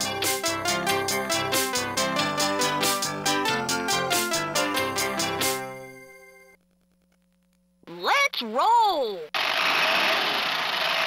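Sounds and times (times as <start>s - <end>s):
toy truck rushing sound effect: 9.4s - 11.0s.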